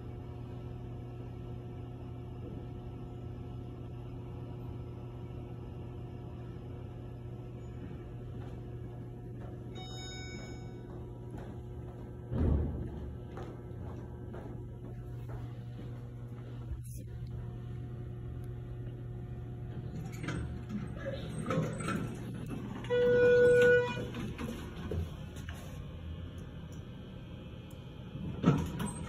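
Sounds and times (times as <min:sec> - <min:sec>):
low hum of elevator running: 0:00.0 - 0:29.0
electronic elevator chime: 0:09.7 - 0:11.1.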